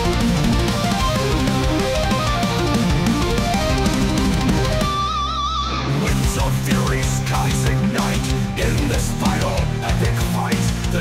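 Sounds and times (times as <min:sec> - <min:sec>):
electric guitar lead: 0:00.0 - 0:11.0
heavy metal band playing: 0:00.0 - 0:11.0.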